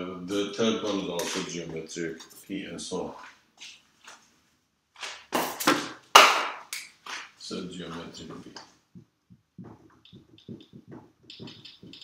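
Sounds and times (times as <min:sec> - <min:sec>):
marker tapping whiteboard: 0:09.0 - 0:12.0.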